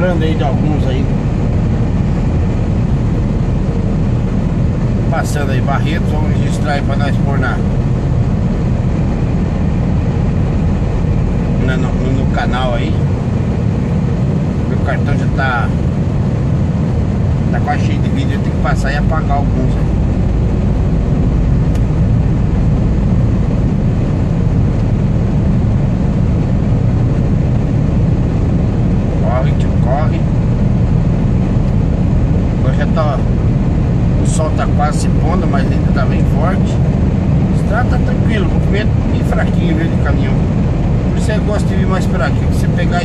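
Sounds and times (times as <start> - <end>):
road noise: 0.0 - 43.0
truck diesel engine drone: 0.0 - 43.0.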